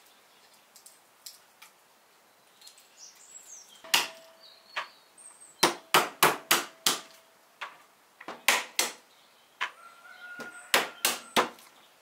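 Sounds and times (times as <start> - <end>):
hammer cracking walnuts on wood: 5.6 - 7.2, 8.2 - 9.0, 10.4 - 11.7.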